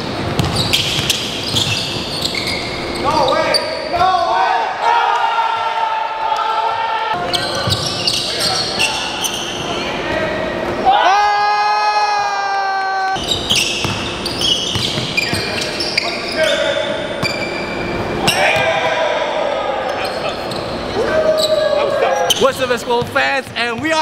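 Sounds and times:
basketballs bouncing on hardwood: 0:00.2 - 0:01.8, 0:13.8 - 0:14.1, 0:14.7 - 0:15.6
voices echoing in a hall: 0:00.7 - 0:24.0.

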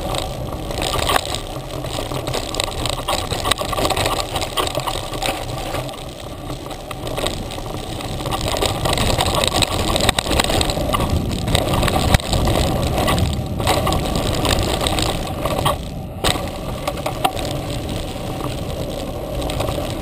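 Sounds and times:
bike rattling over bumps: 0:00.0 - 0:20.0
knobby tyres on dirt: 0:00.0 - 0:20.0
wind rumbling on microphone: 0:00.0 - 0:20.0.

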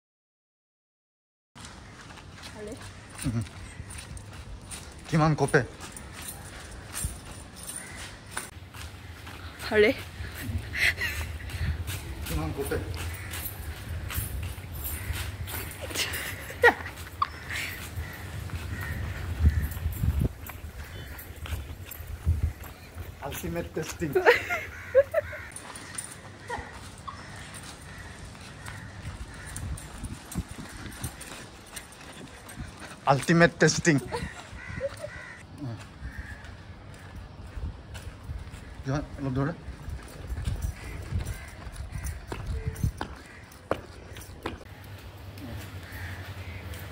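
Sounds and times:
running footsteps on concrete: 0:01.6 - 0:46.9
crow-like bird cawing: 0:07.6 - 0:10.8, 0:12.7 - 0:15.8, 0:17.2 - 0:23.1, 0:24.4 - 0:32.6, 0:33.7 - 0:37.3, 0:40.6 - 0:45.0, 0:45.6 - 0:46.9
wind rumble: 0:08.6 - 0:23.3.

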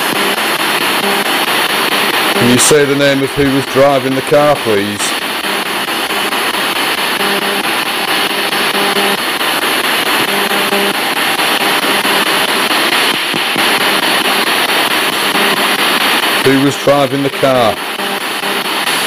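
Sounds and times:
radio static hiss: 0:00.0 - 0:19.0
snatches of radio broadcast: 0:00.0 - 0:19.0.

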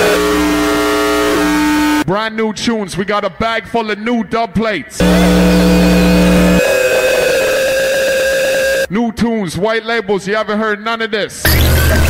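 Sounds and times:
deep bass tone: 0:00.0 - 0:02.0, 0:05.0 - 0:06.6
dense electronic noise wash: 0:00.0 - 0:02.0, 0:05.0 - 0:07.0.

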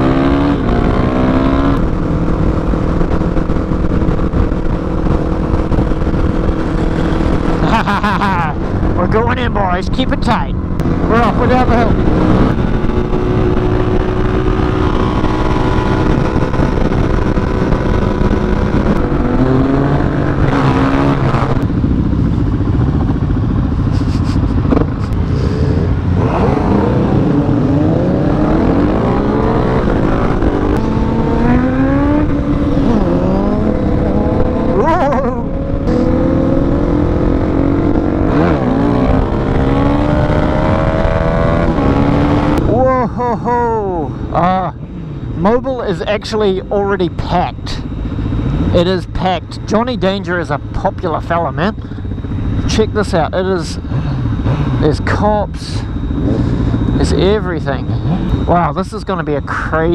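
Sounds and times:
motorcycle engine revving: 0:00.0 - 0:59.9
other motorcycles riding: 0:00.0 - 0:59.9.

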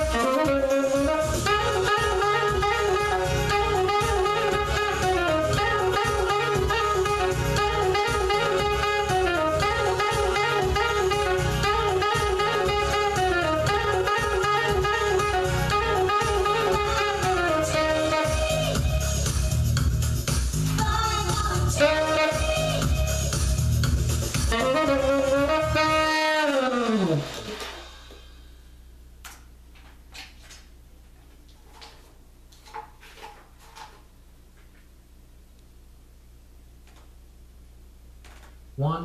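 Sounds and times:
saxophone long held notes: 0:00.0 - 0:19.6, 0:20.8 - 0:28.3
steady low beat: 0:00.0 - 0:29.2.

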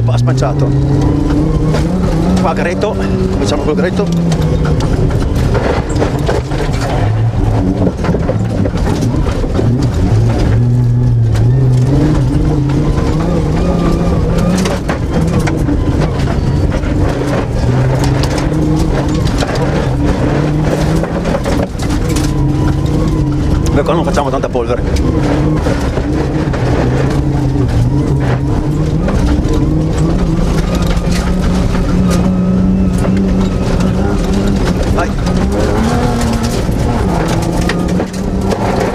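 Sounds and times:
car engine under hard driving: 0:00.0 - 0:38.9
knocks and rattles on dirt track: 0:00.0 - 0:38.9.

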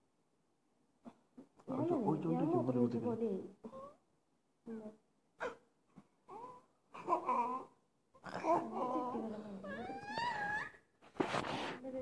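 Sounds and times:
toddler crying: 0:08.4 - 0:10.8.

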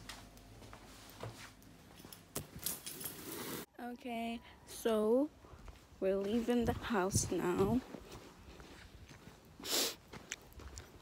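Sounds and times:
rustling and jingling handling noise: 0:01.0 - 0:03.7
woman speaking: 0:03.7 - 0:05.3, 0:06.0 - 0:07.9.

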